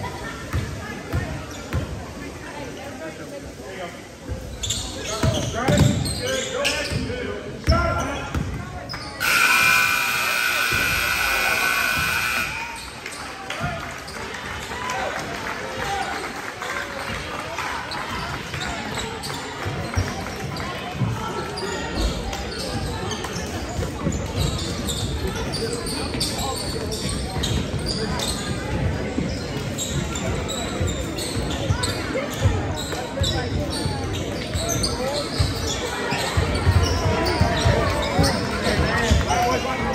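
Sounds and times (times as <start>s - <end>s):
many voices chattering: 0.0s - 39.9s
sneakers squeaking on hardwood: 4.3s - 9.5s, 21.9s - 39.3s.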